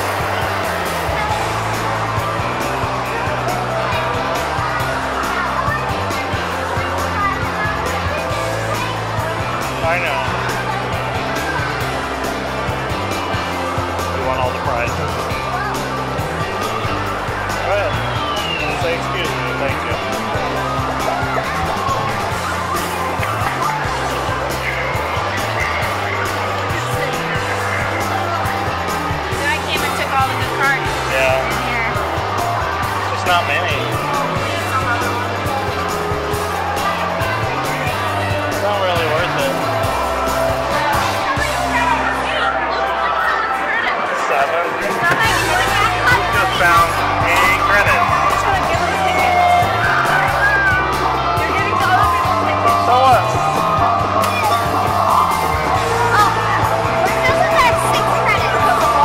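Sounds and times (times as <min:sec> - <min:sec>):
music with repeating bass line: 0:00.0 - 0:42.1, 0:45.1 - 0:59.0
people's voices: 0:00.0 - 0:59.0.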